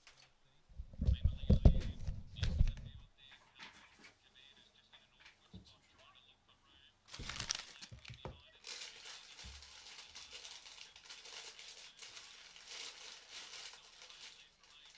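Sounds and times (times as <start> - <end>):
faint crackling rustling: 7.1 - 14.9.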